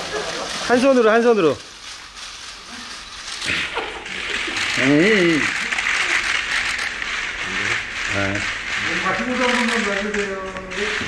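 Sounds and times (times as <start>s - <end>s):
camera shutters clicking: 0.1s - 11.0s.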